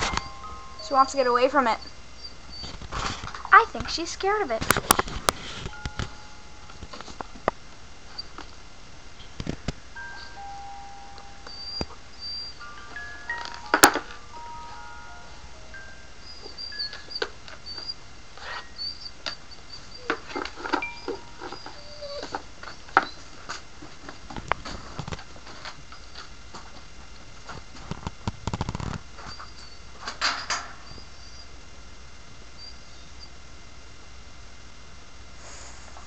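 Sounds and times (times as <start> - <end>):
toy electronic lullaby: 0.0 - 2.4, 5.6 - 6.8, 10.0 - 17.8, 20.0 - 22.4.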